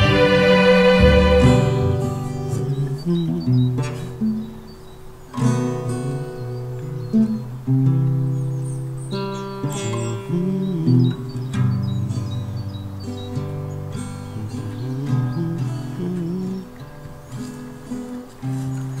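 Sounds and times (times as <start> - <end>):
acoustic guitar: 0.0 - 19.0.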